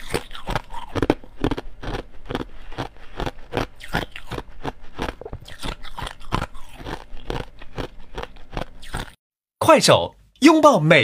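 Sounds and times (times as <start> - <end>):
ice being chewed: 0.0 - 9.2.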